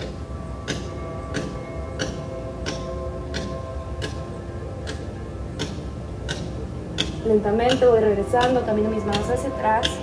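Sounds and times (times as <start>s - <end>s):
soft sustained background music: 0.0s - 10.0s
light ticking: 4.8s - 10.0s.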